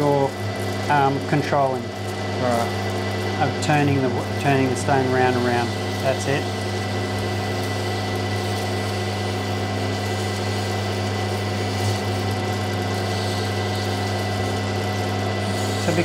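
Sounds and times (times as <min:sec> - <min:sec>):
grinding machine humming: 0:00.0 - 0:16.0
stone grinding on spinning wheel: 0:00.0 - 0:16.0.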